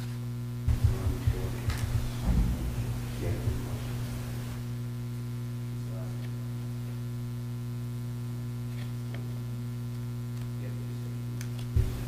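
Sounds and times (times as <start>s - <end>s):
electrical mains hum: 0.0s - 12.0s
low thump: 0.7s - 4.7s.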